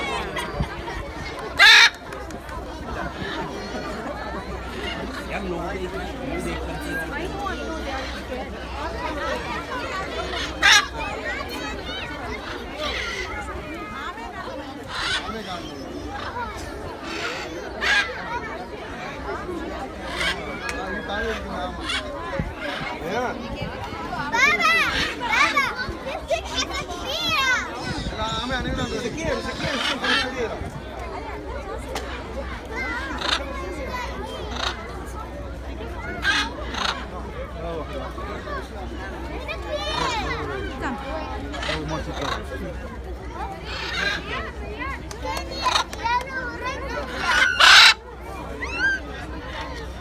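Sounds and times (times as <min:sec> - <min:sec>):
crowd chatter: 0:00.0 - 0:50.0
macaw squawk: 0:01.6 - 0:02.0, 0:36.2 - 0:37.1, 0:47.1 - 0:48.0
children's excited squeals: 0:23.9 - 0:30.4, 0:31.2 - 0:50.0.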